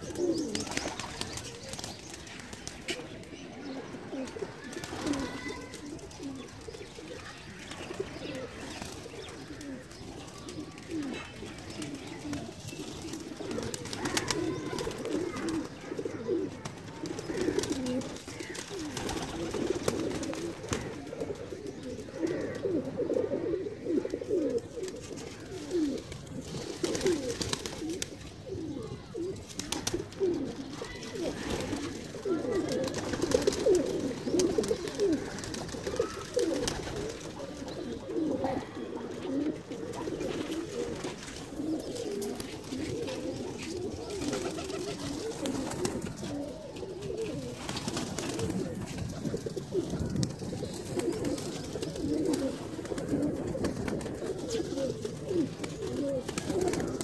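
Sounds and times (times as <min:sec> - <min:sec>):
pigeons cooing: 0:00.0 - 0:57.0.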